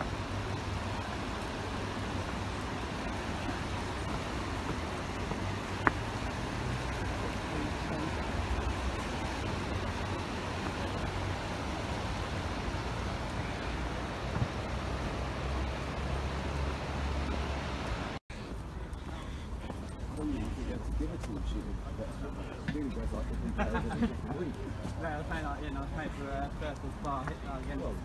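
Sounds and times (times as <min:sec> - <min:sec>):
faint voices of passers-by: 0:00.0 - 0:17.4, 0:18.3 - 0:28.0
road traffic: 0:00.0 - 0:28.0.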